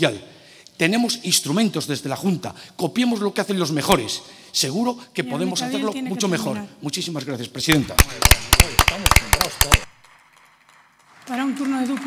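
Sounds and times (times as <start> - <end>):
hand claps: 7.7 - 12.0.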